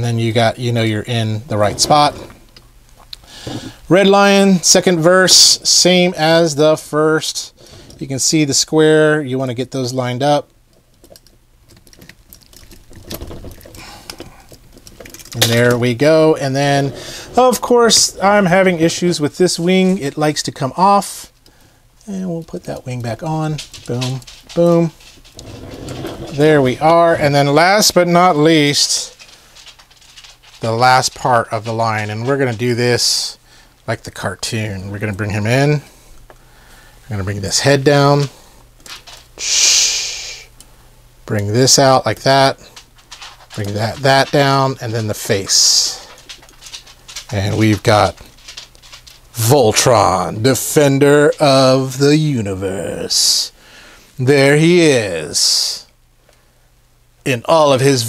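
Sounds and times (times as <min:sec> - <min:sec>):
breathy hiss: 0:03.1 - 0:03.9, 0:16.8 - 0:17.4, 0:35.8 - 0:37.1, 0:39.4 - 0:41.0, 0:53.5 - 0:54.2.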